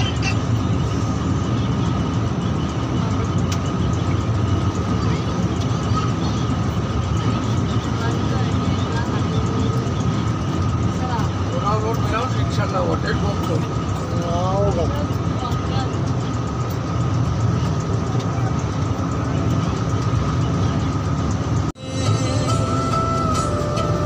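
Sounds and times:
bus engine and tyres droning: 0.0 - 24.0.

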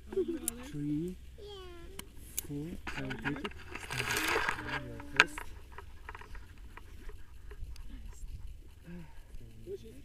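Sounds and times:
gear rustling and clicking: 2.4 - 10.0
wind rumble on microphone: 3.5 - 9.6.

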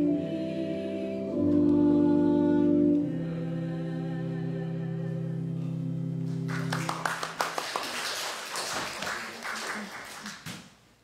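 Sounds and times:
congregation singing a hymn: 0.0 - 5.9
applause: 6.3 - 10.7.

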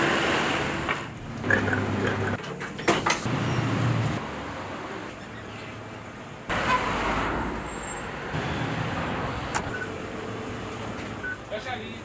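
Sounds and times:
street traffic noise: 0.0 - 12.0.

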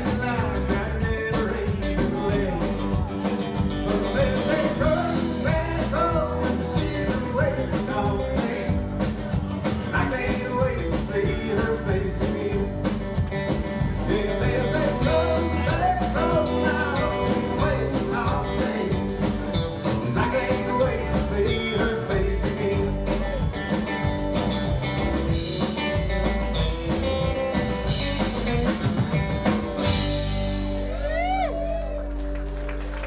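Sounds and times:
drum kit beat: 0.0 - 31.5
electric and acoustic guitars: 0.0 - 33.0
electric bass: 0.0 - 33.0.

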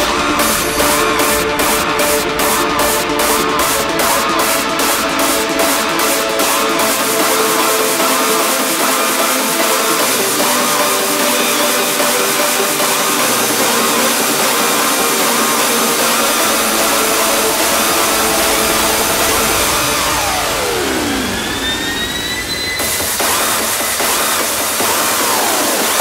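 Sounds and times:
pitch sweeps: 0.0 - 25.9
noisy synth effects: 0.0 - 26.0
steady synth tones: 0.0 - 26.0.

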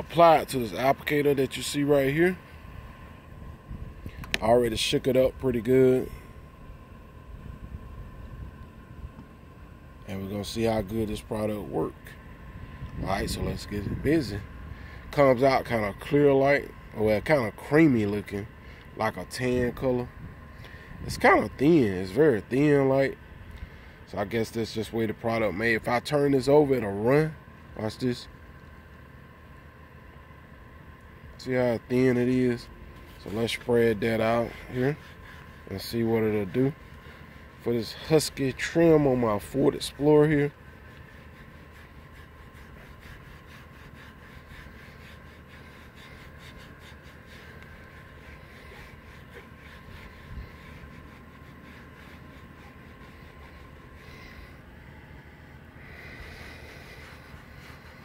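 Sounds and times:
low background hum: 0.0 - 58.0
sponge rubbing on plastic: 31.6 - 58.0.

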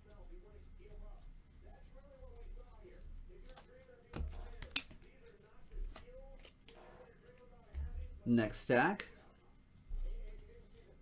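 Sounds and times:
cards rustling and clicking: 2.6 - 7.8.

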